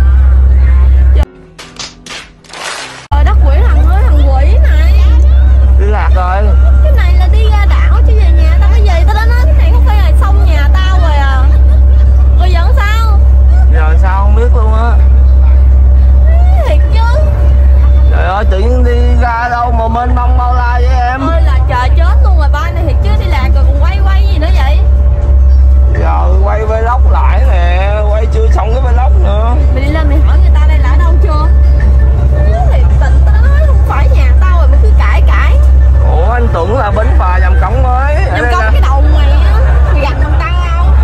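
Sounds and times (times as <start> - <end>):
ferry engine low drone: 0.0 - 41.0.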